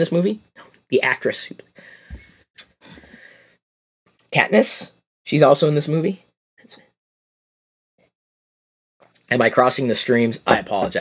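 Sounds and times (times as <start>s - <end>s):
man breathing: 1.8s - 3.6s.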